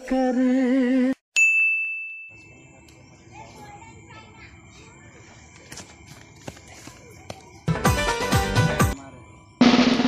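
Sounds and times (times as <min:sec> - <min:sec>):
bright bell ding: 0:01.4 - 0:02.7.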